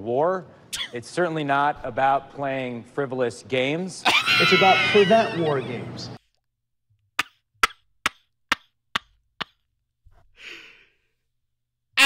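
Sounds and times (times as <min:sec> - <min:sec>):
breathy exhale: 0:10.4 - 0:11.1.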